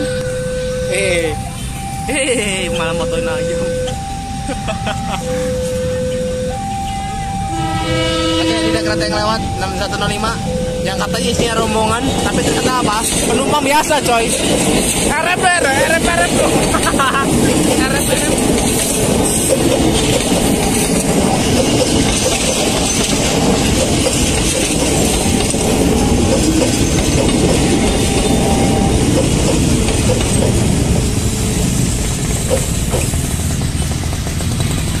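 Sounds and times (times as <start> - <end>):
level crossing alarm two-tone: 0.0 - 12.9, 19.9 - 30.3
traffic rumble: 0.0 - 35.0
train wheels on rails: 0.0 - 35.0.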